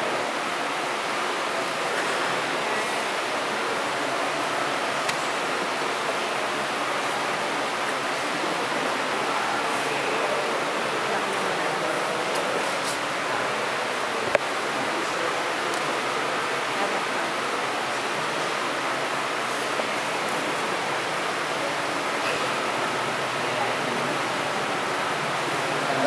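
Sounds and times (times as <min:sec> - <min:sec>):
steady room hiss: 0:00.0 - 0:26.0.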